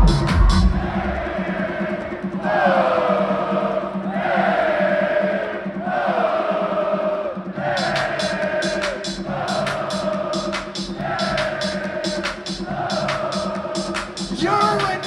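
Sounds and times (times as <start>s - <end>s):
ticking hi-hat pattern: 0.0s - 1.1s, 7.6s - 15.0s
electronic dance music on loudspeakers: 0.0s - 4.1s, 6.6s - 15.0s.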